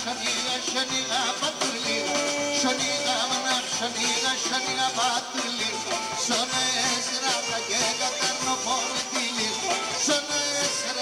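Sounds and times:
folk dance band playing: 0.0s - 11.0s
bowed lyra melody: 1.8s - 5.2s.

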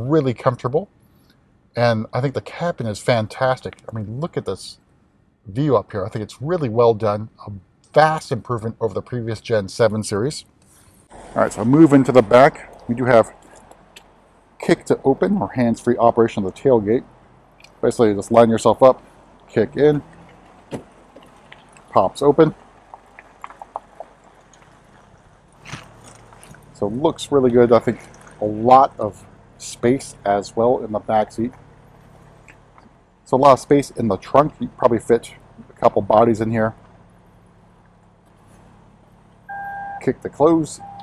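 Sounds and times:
faint outdoor background: 0.0s - 41.0s
electronic warning beep: 39.5s - 40.1s, 40.7s - 41.0s.

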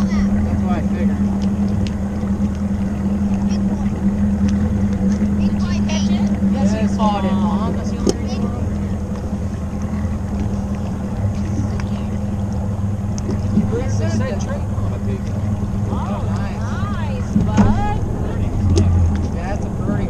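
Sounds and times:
faint voices: 0.0s - 20.0s
outboard motor droning: 0.0s - 20.0s.

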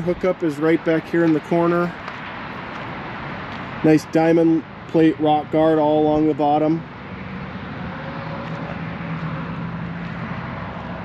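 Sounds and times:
low traffic hum: 0.0s - 11.0s.

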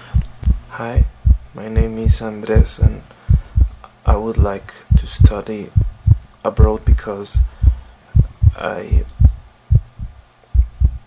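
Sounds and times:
heartbeat thumps: 0.1s - 11.0s.

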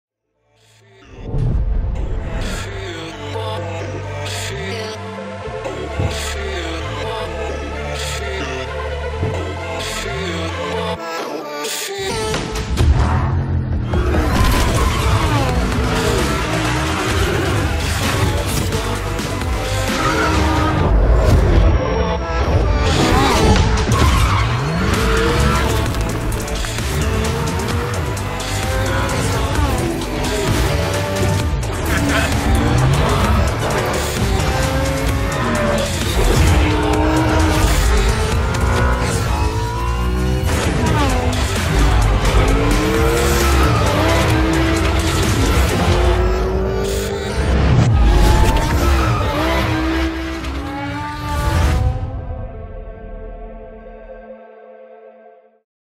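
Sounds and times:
background music: 0.2s - 55.6s
car engine revving: 12.6s - 52.1s
tyres squealing and skidding: 13.8s - 51.9s.

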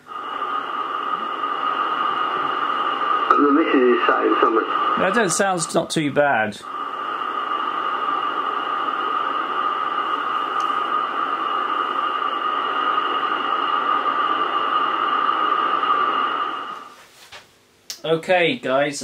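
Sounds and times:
radio static from loudspeaker: 0.0s - 16.9s.

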